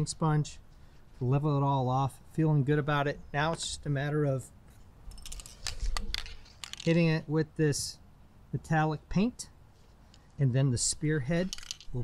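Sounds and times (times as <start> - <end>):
small clicks and crinkling: 5.2 - 7.0.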